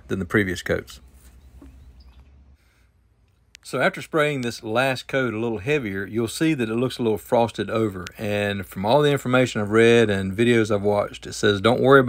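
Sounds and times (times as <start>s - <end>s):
faint bird chirps: 1.0s - 2.6s.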